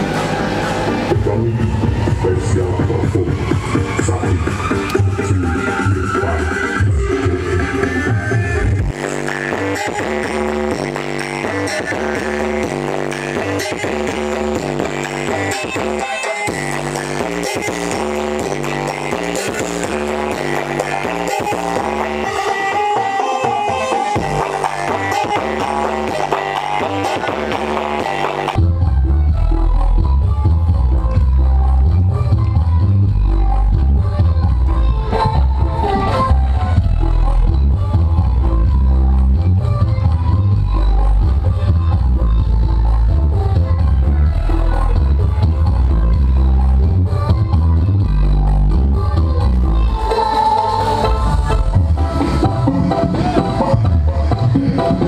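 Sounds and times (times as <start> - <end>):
loud dance music with heavy bass: 0.0 - 55.0.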